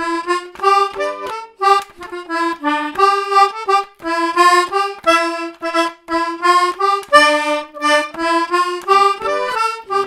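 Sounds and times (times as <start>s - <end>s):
accordion playing a waltz: 0.0s - 10.0s.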